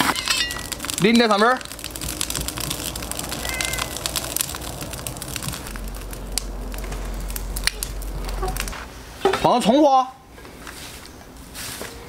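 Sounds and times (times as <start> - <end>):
thick sauce pouring with crackling: 0.0 - 9.0.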